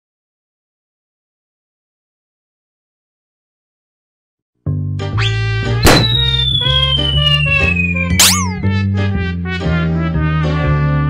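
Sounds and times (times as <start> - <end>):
comic jingle music: 6.0 - 8.7
rising whistle-like glide: 6.1 - 8.6
sharp hit: 8.1 - 8.7.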